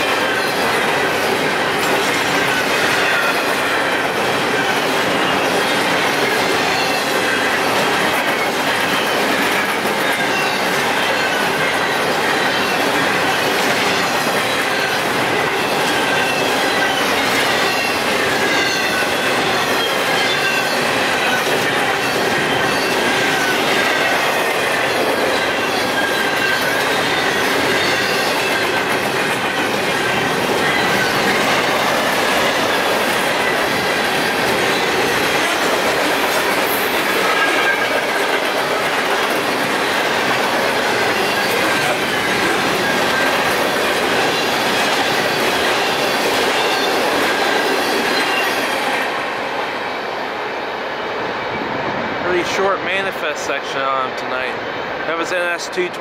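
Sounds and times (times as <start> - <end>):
freight train rolling past: 0.0 - 56.0
wavering wheel squeal: 13.9 - 28.9.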